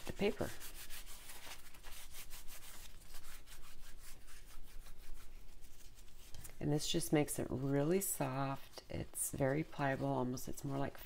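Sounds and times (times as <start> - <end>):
wet paper rustling and rubbing: 0.0 - 11.0.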